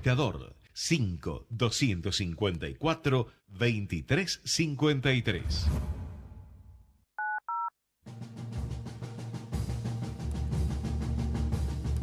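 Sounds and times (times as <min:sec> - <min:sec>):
telephone keypad touch-tone beeps: 0:07.2 - 0:07.7.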